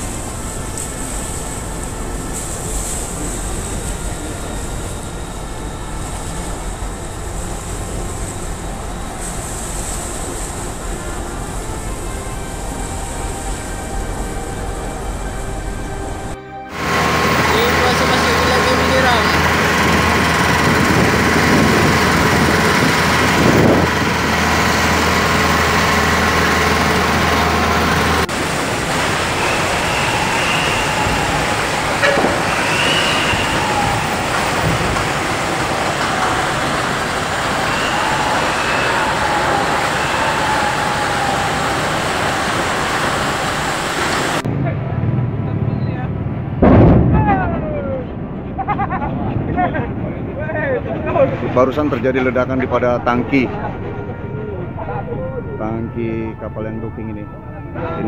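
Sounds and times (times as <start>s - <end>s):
loud steady rushing noise: 0.0s - 56.5s
indistinct voices calling: 10.9s - 44.4s.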